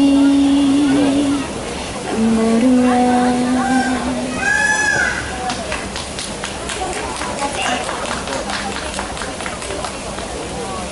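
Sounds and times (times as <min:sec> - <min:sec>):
audience applauding: 0:05.4 - 0:10.6.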